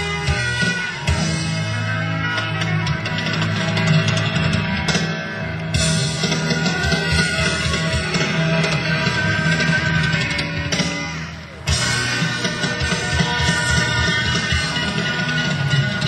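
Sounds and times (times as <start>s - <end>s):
drums: 0.0s - 16.0s
guitar: 0.0s - 16.0s.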